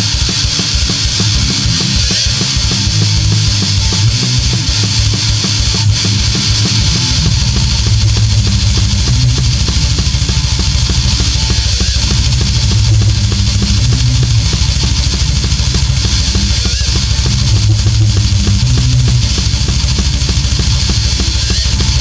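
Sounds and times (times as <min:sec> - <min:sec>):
distorted electric guitars: 0:00.0 - 0:22.0
fast kick-drum pattern: 0:00.0 - 0:22.0.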